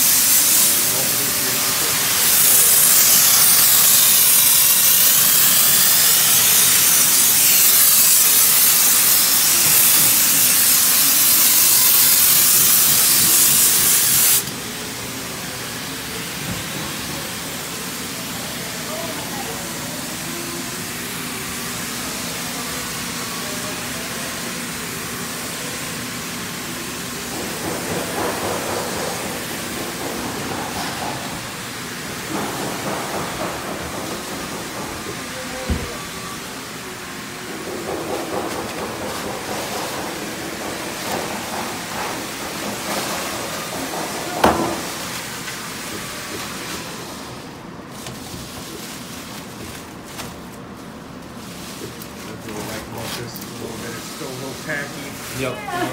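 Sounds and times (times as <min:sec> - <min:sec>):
spray adhesive hissing: 0:00.0 - 0:14.5
faint voices: 0:52.2 - 0:55.9.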